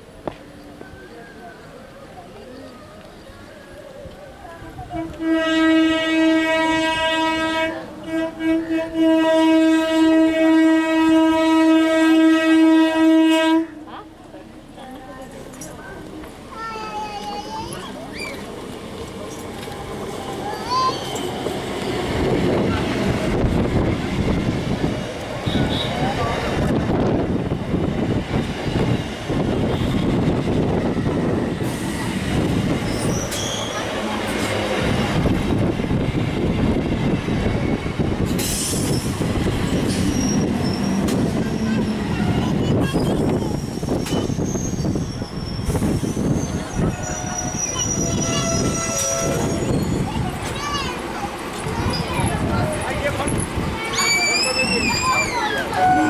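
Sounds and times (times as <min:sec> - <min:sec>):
train wheels rumbling on rails: 0:00.1 - 0:56.0
wheel and brake squeals: 0:17.4 - 0:18.5, 0:20.4 - 0:22.0, 0:32.8 - 0:33.9, 0:38.5 - 0:50.3, 0:53.9 - 0:56.0.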